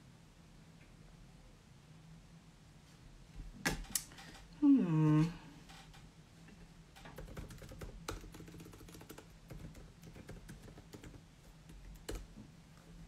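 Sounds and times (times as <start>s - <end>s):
keyboard typing: 7.0s - 12.4s.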